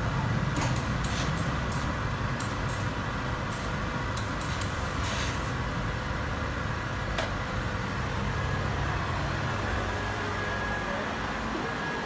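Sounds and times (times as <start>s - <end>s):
steam iron hissing: 0.6s - 2.9s, 3.5s - 5.6s.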